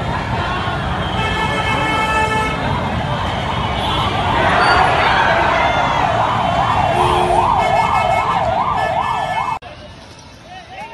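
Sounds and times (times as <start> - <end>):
crowd hubbub: 0.0 - 10.9
emergency siren wailing: 2.6 - 9.6.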